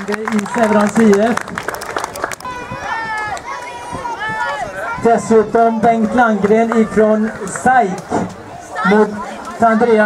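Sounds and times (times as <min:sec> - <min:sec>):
faint crowd noise: 0:00.0 - 0:10.0.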